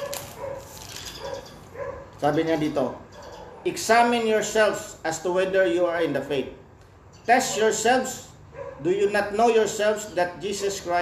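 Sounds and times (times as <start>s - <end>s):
dog barking: 0.0s - 2.2s, 8.5s - 8.9s.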